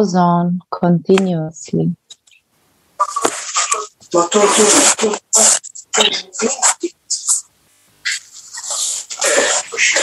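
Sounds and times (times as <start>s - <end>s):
person talking over video call: 0.0s - 10.0s.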